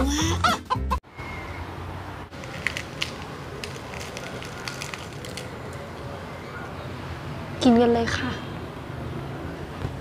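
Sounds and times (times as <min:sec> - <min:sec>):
fried chicken batter crackling: 0:02.4 - 0:05.8.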